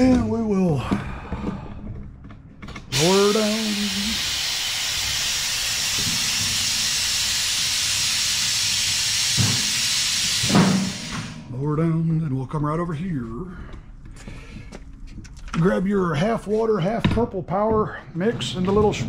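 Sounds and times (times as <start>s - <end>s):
person speaking: 2.9s - 4.3s
compressed air hissing: 2.9s - 11.5s.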